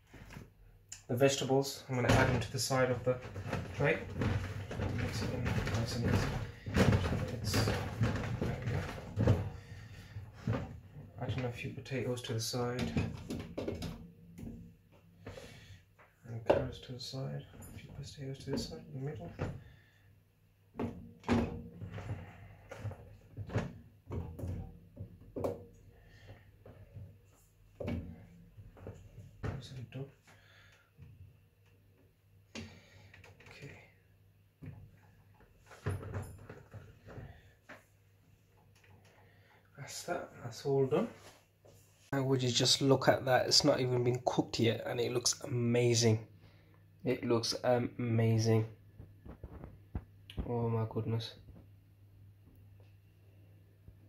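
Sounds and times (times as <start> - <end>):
man speaking: 1.0 - 4.1, 4.8 - 8.9, 11.2 - 13.1, 16.3 - 19.4, 39.8 - 41.2, 42.1 - 46.2, 47.0 - 48.7
soft knocks and rustles: 2.0 - 11.7, 49.0 - 50.6.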